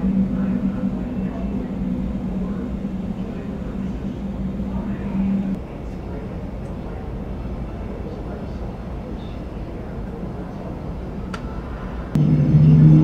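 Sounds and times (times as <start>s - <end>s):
droning hum: 0.0s - 13.0s
low rumble of aircraft: 0.0s - 13.0s.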